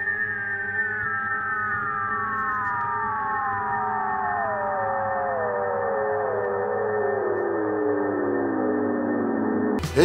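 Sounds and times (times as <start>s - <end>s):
synthesized tones gliding downward: 0.0s - 10.0s.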